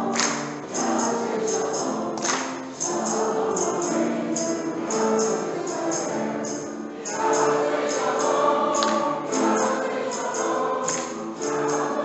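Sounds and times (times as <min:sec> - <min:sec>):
choir singing sustained notes: 0:00.0 - 0:12.0
tambourine jingles: 0:00.0 - 0:12.0.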